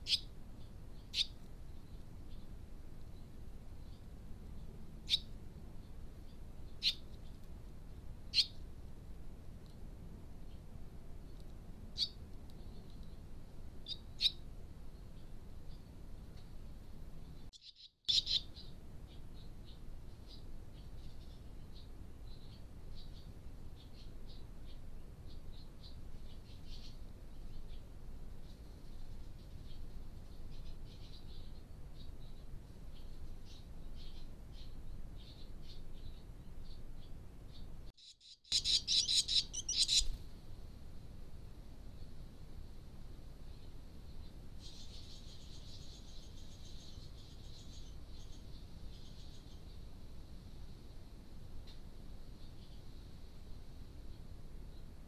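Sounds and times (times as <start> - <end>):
nestlings high chirps: 0.0 - 0.3, 17.5 - 18.6, 38.0 - 40.2
swallow chicks chirping: 38.5 - 40.2.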